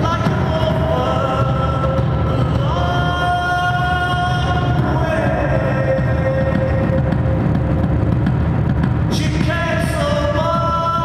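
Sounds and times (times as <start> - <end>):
live industrial band playing: 0.0 - 11.0.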